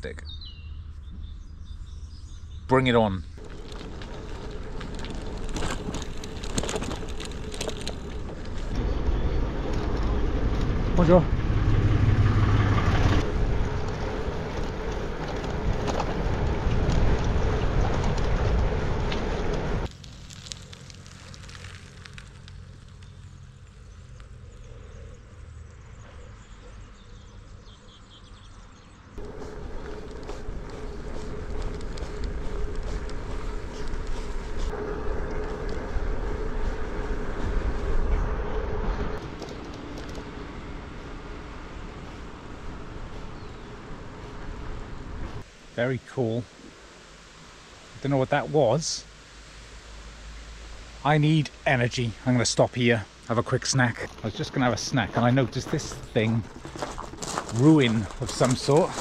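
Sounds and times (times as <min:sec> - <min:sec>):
bicycle road rumble: 0:00.0 - 0:59.0
quiet outdoor ambience: 0:00.0 - 0:59.0
wind rushing over camera: 0:03.3 - 0:19.9, 0:29.2 - 0:45.6
steady hum: 0:29.2 - 0:45.8.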